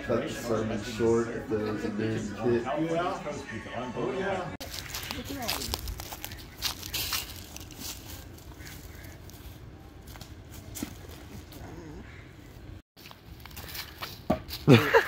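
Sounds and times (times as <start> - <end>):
low outdoor rumble: 4.5 - 13.7
footsteps on dry leaves: 4.6 - 12.2, 13.0 - 14.8.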